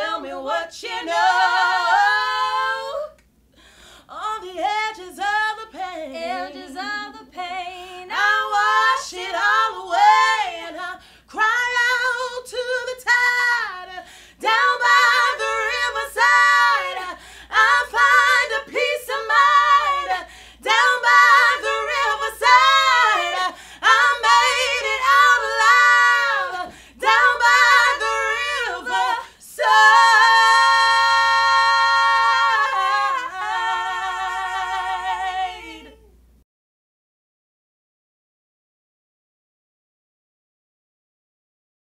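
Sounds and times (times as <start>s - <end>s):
women singing a cappella: 0.0s - 36.2s
singers breathing: 3.5s - 4.1s, 11.0s - 11.3s, 14.0s - 14.4s, 17.1s - 17.5s, 20.2s - 20.6s, 23.5s - 23.8s, 26.7s - 27.0s.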